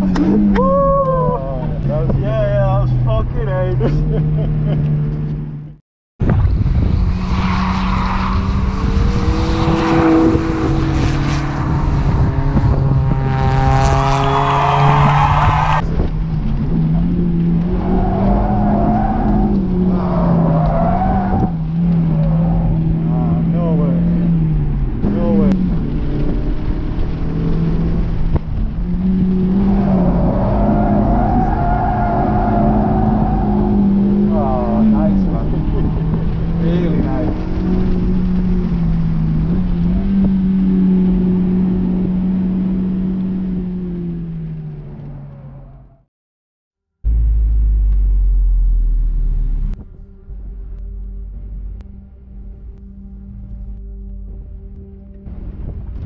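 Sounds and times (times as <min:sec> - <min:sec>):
car engine running hard: 0:47.1 - 0:49.8.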